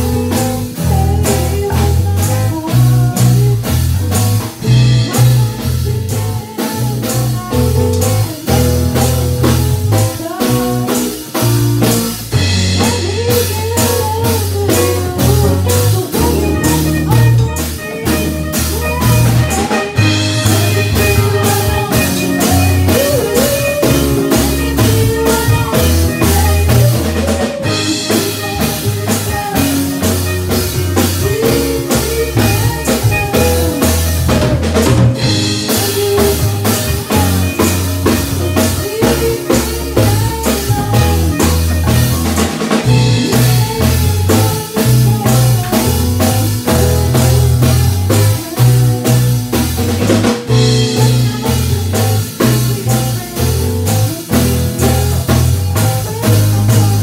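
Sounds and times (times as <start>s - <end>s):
drum kit beat: 0.0s - 57.0s
electric guitar: 0.0s - 57.0s
electric piano: 0.0s - 57.0s
lead vocal singing: 4.6s - 49.2s.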